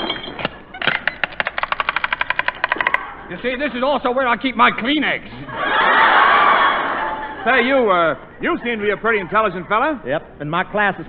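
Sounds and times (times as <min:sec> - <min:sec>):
rapid ratcheting clicks: 0:00.9 - 0:03.0.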